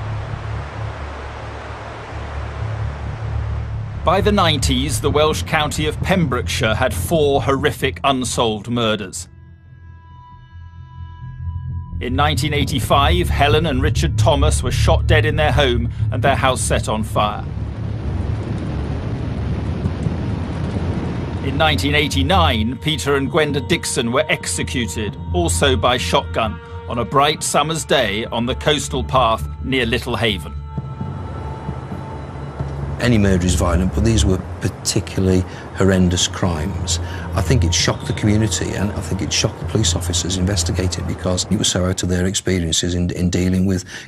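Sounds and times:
faint hiss: 0.0 - 9.2, 13.0 - 44.0
sea surf: 0.0 - 9.2, 12.1 - 43.0
low rumbling drone: 0.0 - 43.5
wind buffeting microphone: 12.7 - 26.4, 30.6 - 42.0.

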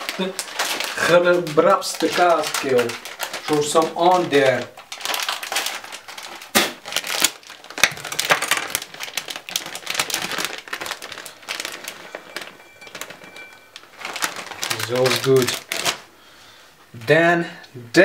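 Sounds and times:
plastic bag crinkling: 0.0 - 16.2.

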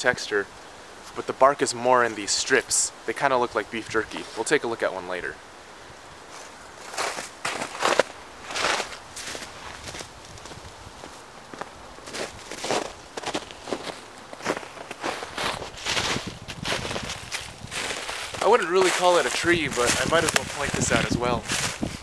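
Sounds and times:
footsteps crunching on snow and leaves: 6.2 - 22.0.

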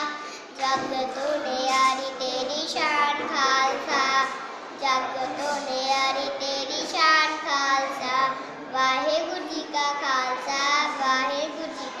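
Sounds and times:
child singing a poem: 0.0 - 12.0.

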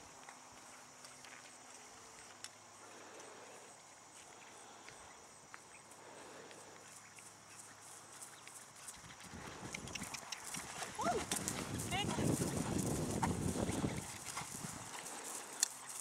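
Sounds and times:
horse hoofbeats on grass: 6.8 - 16.0.

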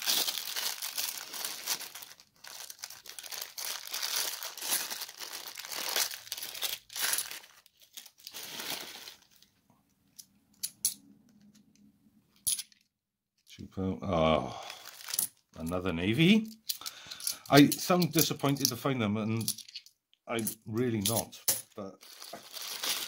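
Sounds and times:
plastic bag crinkling: 0.0 - 9.6, 14.5 - 18.6, 22.0 - 23.0.

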